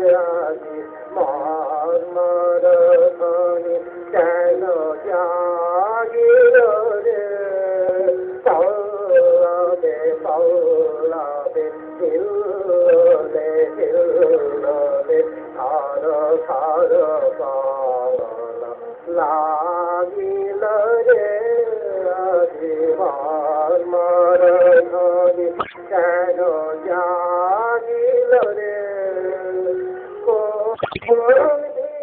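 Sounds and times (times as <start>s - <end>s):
person singing slow melody: 0.0s - 32.0s
sustained accompaniment: 0.0s - 32.0s.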